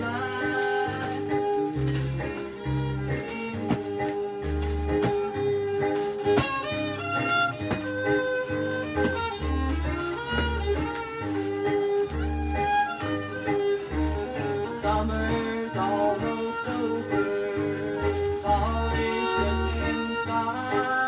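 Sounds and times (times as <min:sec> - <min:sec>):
country song on a record: 0:00.0 - 0:21.0.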